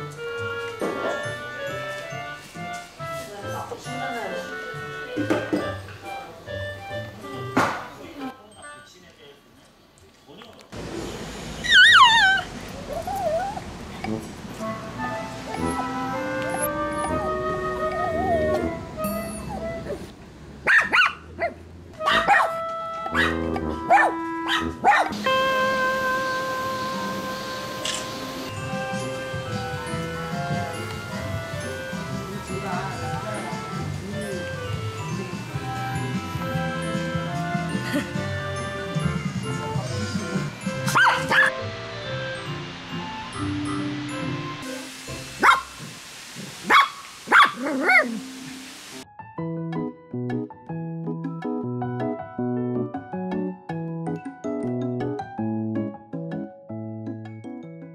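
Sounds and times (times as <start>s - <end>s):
background music: 0.0s - 8.8s, 14.1s - 20.0s, 22.0s - 45.8s, 47.5s - 57.9s
small dogs barking: 20.6s - 25.2s, 40.9s - 41.5s, 45.4s - 45.8s, 46.6s - 48.2s.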